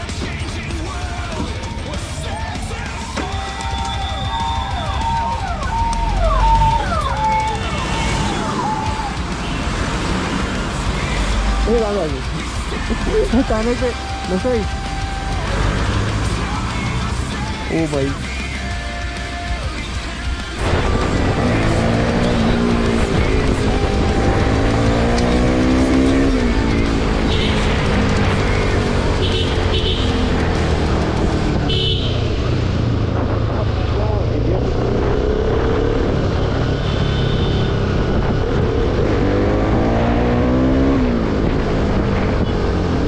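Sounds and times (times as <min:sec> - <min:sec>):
motorcycle engine accelerating: 0:00.0 - 0:18.8, 0:20.4 - 0:43.0
wind noise on microphone: 0:34.7 - 0:39.8.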